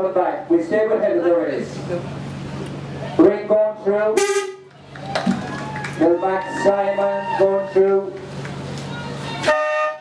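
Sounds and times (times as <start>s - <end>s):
horn blast: 4.1s - 4.7s, 9.4s - 10.0s.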